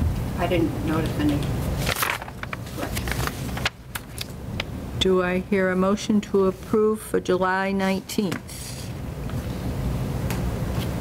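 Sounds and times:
paper rustling: 1.7 - 4.4.

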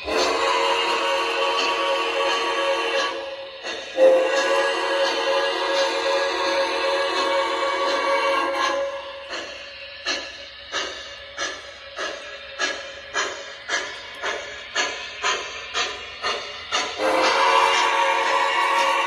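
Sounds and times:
model steam locomotive chuffing: 0.0 - 19.0.

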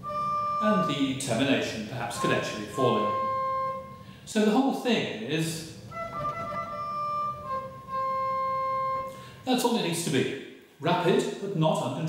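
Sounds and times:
pipe organ trill: 0.0 - 3.9.

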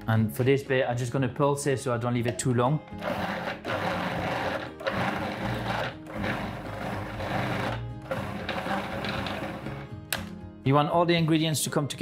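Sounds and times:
food processor pulsing: 3.0 - 9.9.

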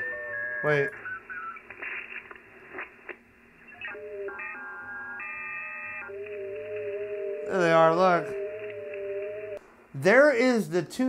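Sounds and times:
digital signal tones stepping pitch: 0.0 - 1.6, 3.7 - 9.6
radio band hiss: 0.6 - 3.8
radio clicks: 0.9 - 4.5.

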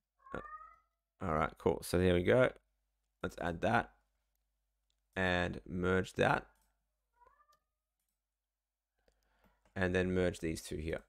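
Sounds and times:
cat meowing: 0.2 - 0.9, 7.2 - 7.7.

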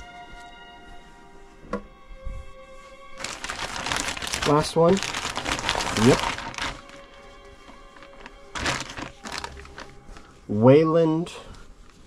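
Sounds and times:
soft background music: 0.0 - 12.0
packaging crinkling: 3.2 - 10.4.

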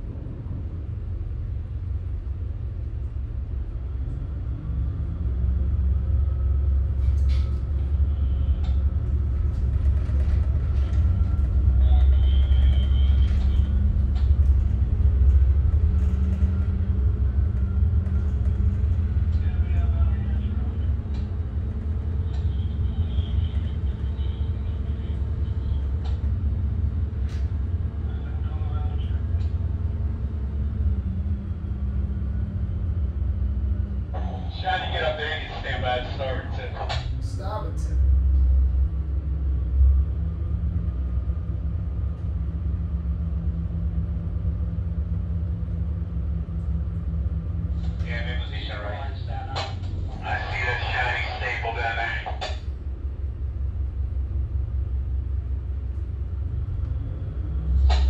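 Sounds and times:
diesel engines rumbling: 0.0 - 58.0.

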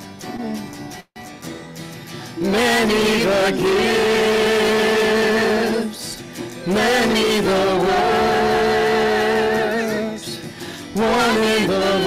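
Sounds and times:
person singing a hymn: 2.4 - 12.0.

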